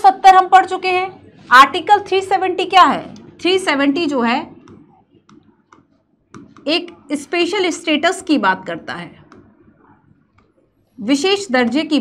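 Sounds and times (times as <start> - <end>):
stylus tapping on touchscreen: 4.5 - 7.0, 9.2 - 10.6.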